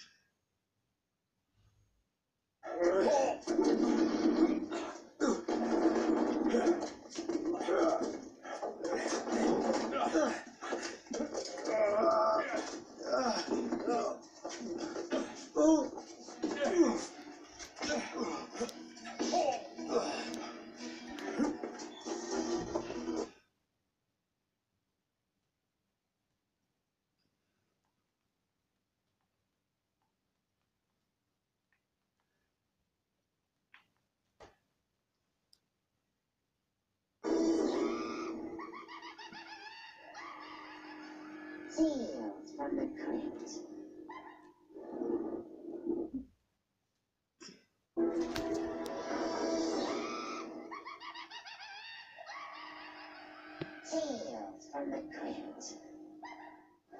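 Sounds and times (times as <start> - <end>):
tv audio with gliding voice: 2.6 - 23.5, 37.2 - 46.3, 47.4 - 56.9
music through television speakers: 3.4 - 23.3, 37.2 - 42.1, 48.0 - 50.9.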